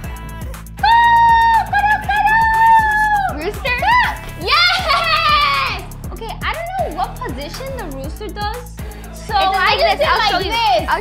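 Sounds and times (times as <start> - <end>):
background music with steady beat: 0.0 - 11.0.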